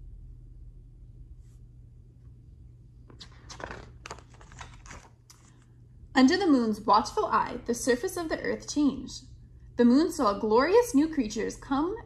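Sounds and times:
book pages rustling: 3.0s - 5.7s.

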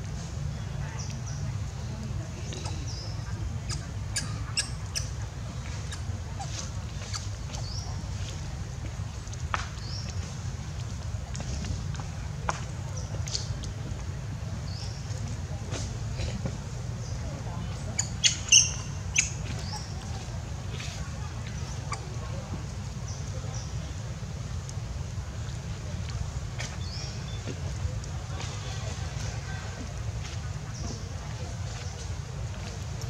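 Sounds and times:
infant monkey squeaking: 3.6s - 7.6s, 17.9s - 20.0s.

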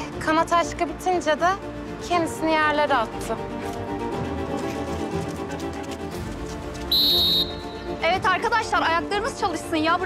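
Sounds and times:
background music with sustained tones: 0.0s - 10.0s
sports whistle blast: 6.9s - 7.8s.

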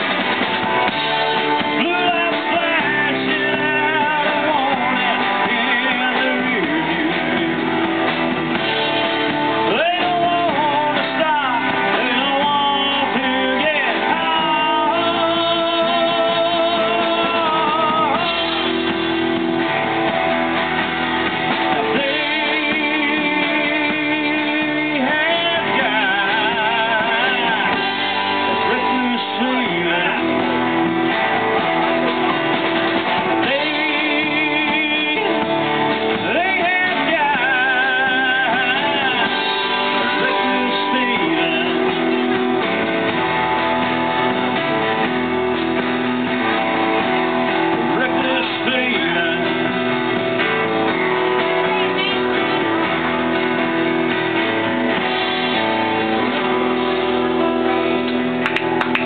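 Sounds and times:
bent guitar lead notes: 0.0s - 59.0s
live country band playing: 0.0s - 59.0s.

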